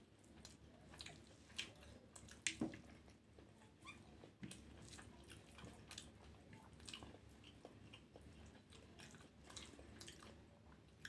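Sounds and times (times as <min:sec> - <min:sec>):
mouth chewing: 0:00.2 - 0:11.0
food squished by hand: 0:00.3 - 0:03.2.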